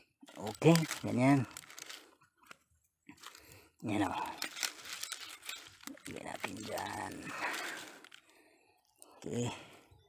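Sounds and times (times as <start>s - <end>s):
dry mulch crackling and rustling: 0.3s - 8.3s.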